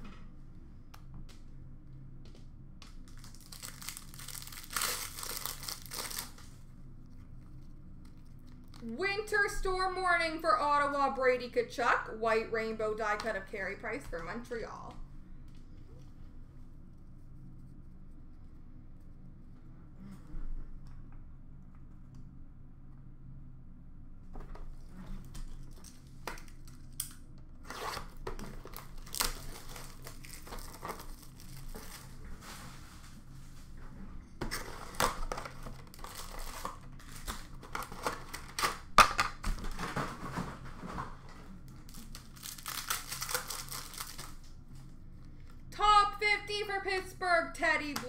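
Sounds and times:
wrappers tearing and crinkling: 3.0 - 6.6, 25.3 - 32.5, 34.5 - 39.1, 41.6 - 44.6.

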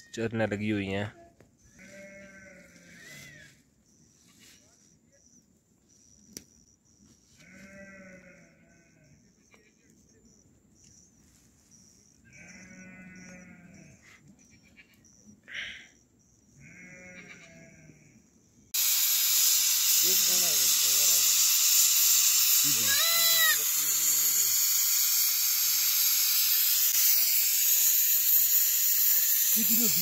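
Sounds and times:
sheep bleating: 1.8 - 3.1, 7.4 - 9.8, 12.3 - 14.0, 16.6 - 18.1, 22.7 - 24.4
pressure cooker steam hissing: 18.8 - 30.0.

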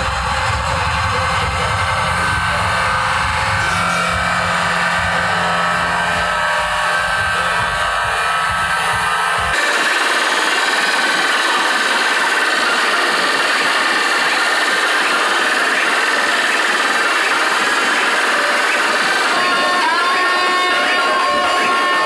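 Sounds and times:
deep bass: 0.0 - 9.6
bright harsh noise: 0.0 - 22.0
distorted loud speaker music: 0.0 - 22.0.

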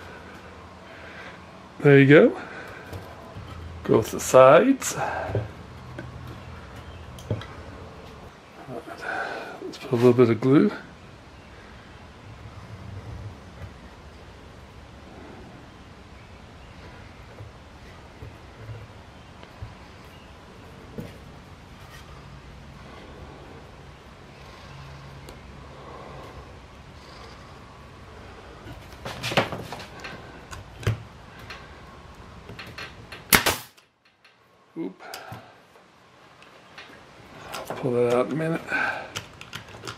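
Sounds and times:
steady low hum: 0.0 - 39.9.

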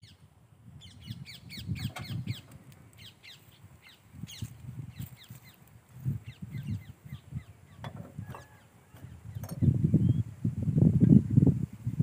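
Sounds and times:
birds chirping and calling: 0.8 - 12.0.

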